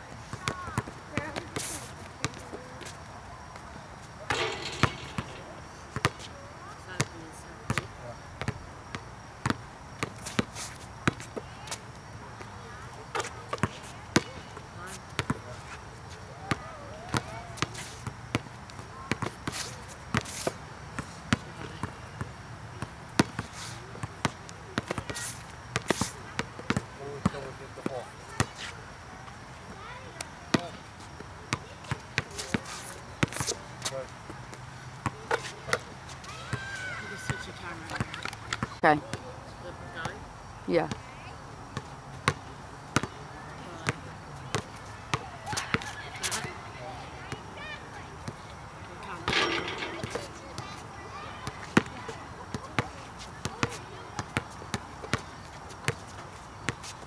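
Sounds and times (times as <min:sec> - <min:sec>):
basketball bouncing on hard court: 0:04.3 - 0:06.3, 0:49.3 - 0:51.9.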